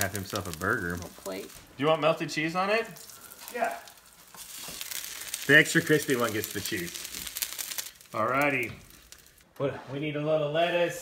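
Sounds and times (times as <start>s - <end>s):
patties sizzling in frying pan: 0.0s - 9.4s.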